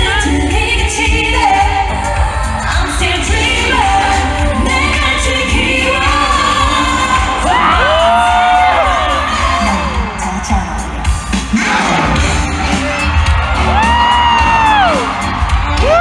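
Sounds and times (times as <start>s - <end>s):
woman singing pop song: 0.0s - 12.0s
backing track with steady beat: 0.0s - 16.0s
crowd: 0.0s - 16.0s.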